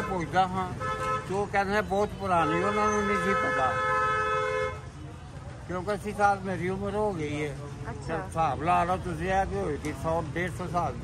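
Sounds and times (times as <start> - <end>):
vehicle horn held tone: 0.0 - 1.4, 2.4 - 4.9
man talking: 0.0 - 4.0.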